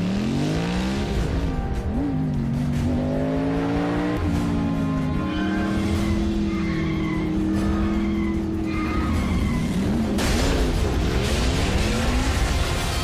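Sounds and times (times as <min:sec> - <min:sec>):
car engine revving: 0:00.0 - 0:13.0.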